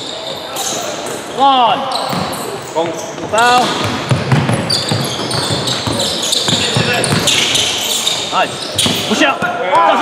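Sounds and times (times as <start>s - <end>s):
sneakers squeaking on hardwood floor: 0.0s - 9.6s
basketball dribbling: 3.2s - 9.5s.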